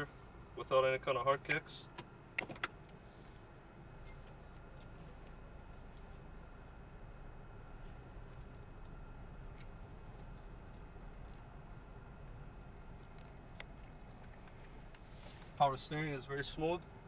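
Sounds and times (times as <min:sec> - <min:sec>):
car engine hum inside cabin: 0:00.0 - 0:17.0.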